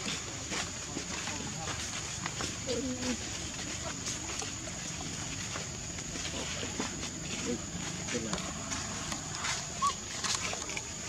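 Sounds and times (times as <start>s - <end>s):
macaque calling: 9.4s - 10.8s.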